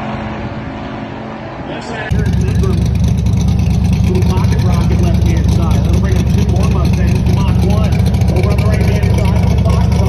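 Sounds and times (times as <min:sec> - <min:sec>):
car engine idling: 0:02.1 - 0:10.0.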